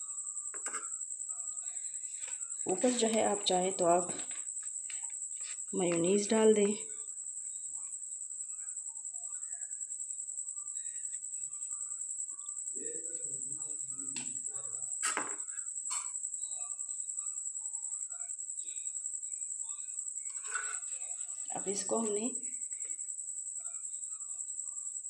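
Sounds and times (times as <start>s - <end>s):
cricket chirping: 0.0s - 25.0s.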